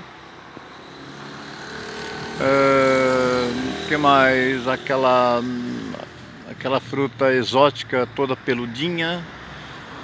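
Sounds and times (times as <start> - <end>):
outdoor background noise: 0.0 - 10.0
vehicle engine hum: 0.0 - 10.0.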